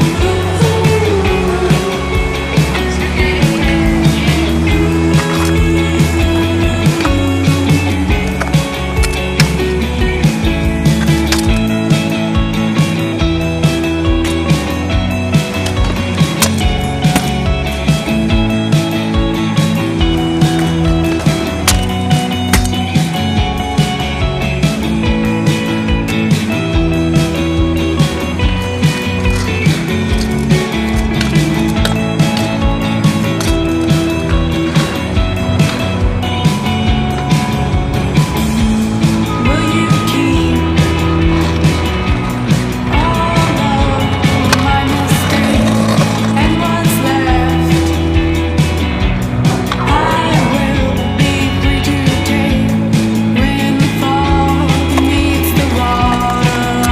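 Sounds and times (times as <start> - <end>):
music with steady bass line: 0.0 - 56.9
skateboard rolling on concrete: 0.0 - 56.9
skateboard impacts: 2.4 - 25.0, 25.6 - 52.6, 53.6 - 56.9.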